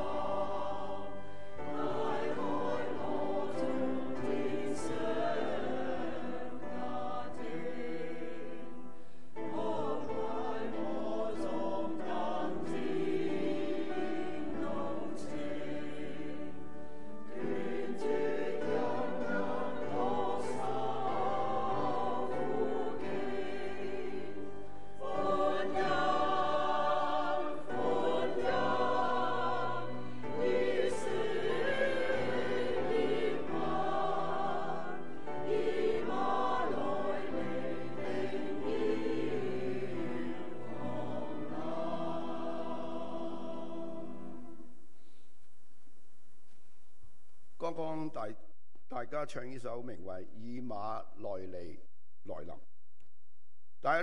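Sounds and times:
choir singing a hymn: 0.0 - 44.7.

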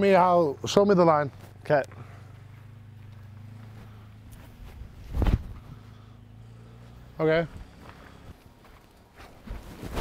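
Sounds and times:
low steady hum: 0.0 - 9.2
light footsteps on turf: 1.2 - 5.7, 7.4 - 9.8
heavy foot thud: 4.7 - 5.6.

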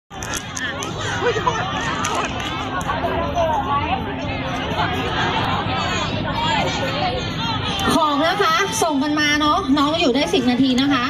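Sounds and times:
large crowd chattering: 0.1 - 11.0.

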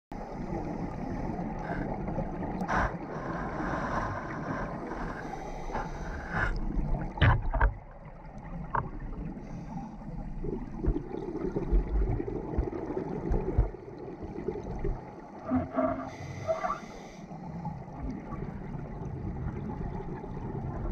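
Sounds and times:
underwater bubbles rushing: 0.2 - 20.9.

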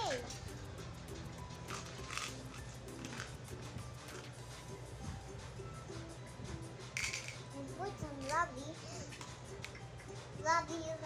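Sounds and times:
child making sing-song sounds: 10.4 - 11.0.

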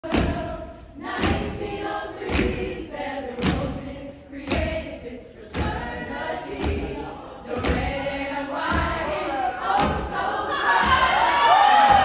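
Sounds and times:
women chanting together: 0.0 - 12.0.

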